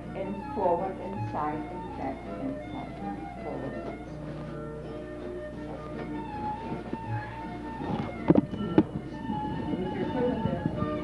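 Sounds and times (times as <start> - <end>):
fiddle music: 0.0 - 11.0.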